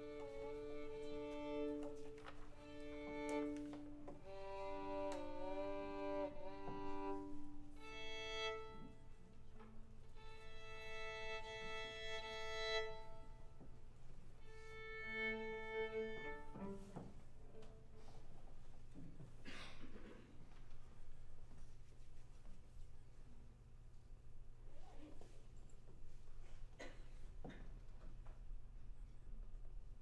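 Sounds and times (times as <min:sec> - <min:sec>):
violin and cello tuning: 0:00.0 - 0:13.8, 0:14.4 - 0:18.1.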